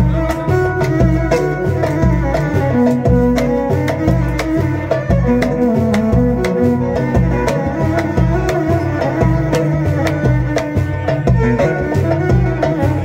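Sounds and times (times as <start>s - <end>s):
hand drum beat: 0.0s - 13.0s
pulsing bass: 0.0s - 13.0s
violin melody: 0.0s - 13.0s.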